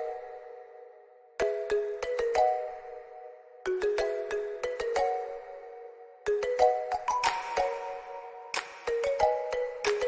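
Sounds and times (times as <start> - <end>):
light chiming melody: 0.0 - 10.0.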